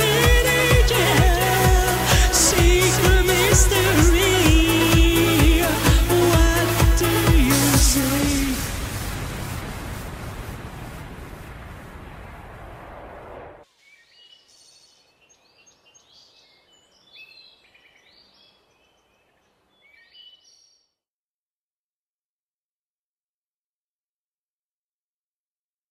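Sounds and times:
electronic dance music: 0.0s - 9.1s
birdsong chirps: 13.7s - 21.0s.

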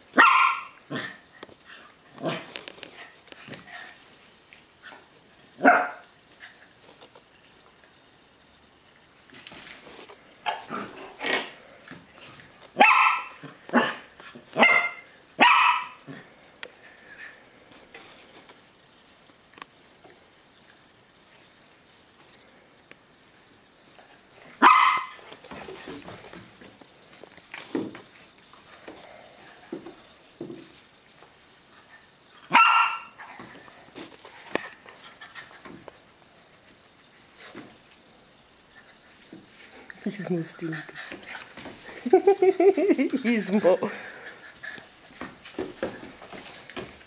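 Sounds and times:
dog barking: 0.2s - 0.8s, 5.6s - 6.0s, 12.8s - 14.0s, 14.6s - 16.0s, 24.6s - 25.2s, 32.5s - 33.2s.

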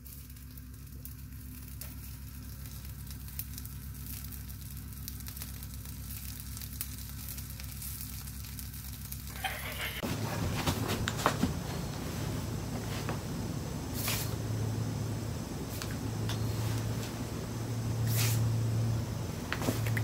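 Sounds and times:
sausages sizzling in a frying pan: 0.0s - 10.1s, 11.5s - 20.0s
low steady hum: 0.0s - 20.0s.

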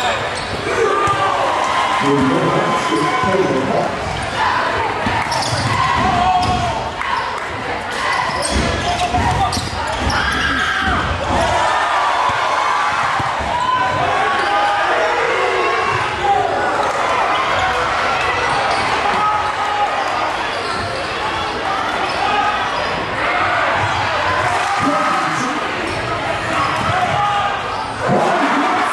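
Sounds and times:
sneaker squeaks: 0.0s - 1.2s, 5.1s - 11.2s, 20.4s - 23.1s
crowd voices: 0.0s - 28.9s.

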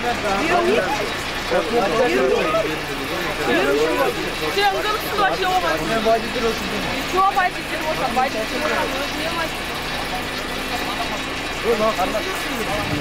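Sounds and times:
engine running: 0.0s - 13.0s
people talking: 0.0s - 13.0s
street traffic: 0.0s - 13.0s.

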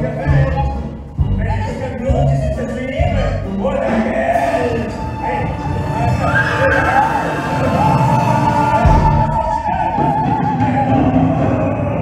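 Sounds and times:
singing with orchestra: 0.0s - 12.0s.

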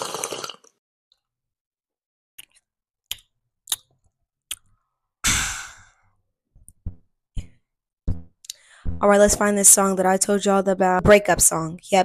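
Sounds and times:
breathy exhale: 5.2s - 6.1s.

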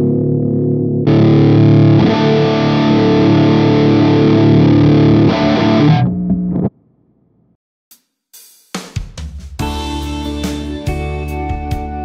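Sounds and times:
distorted electric guitar chords: 0.0s - 6.7s, 9.6s - 12.0s.

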